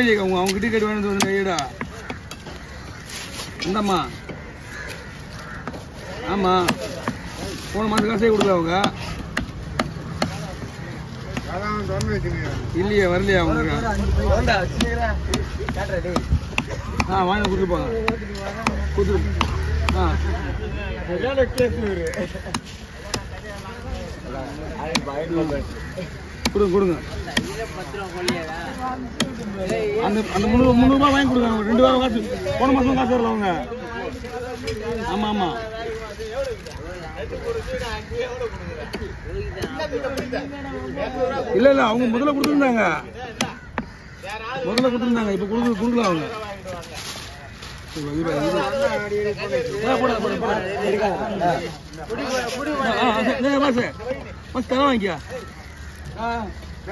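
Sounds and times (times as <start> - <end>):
knife chopping fish on wood: 7.9 - 10.4.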